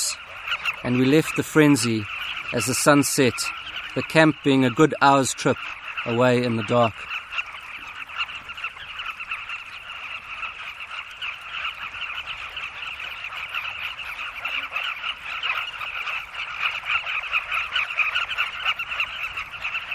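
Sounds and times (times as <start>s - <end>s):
bird colony calling: 0.0s - 19.9s.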